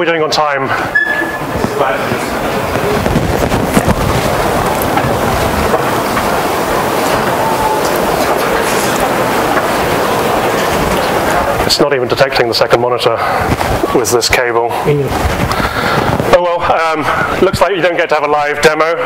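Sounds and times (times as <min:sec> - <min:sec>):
audience chatter: 0:00.0 - 0:18.2
brief high tone: 0:00.9 - 0:01.5.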